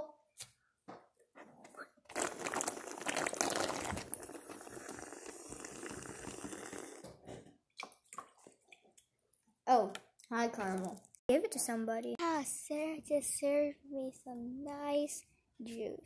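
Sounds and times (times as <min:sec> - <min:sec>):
juice slurping through a straw: 0:01.8 - 0:07.2.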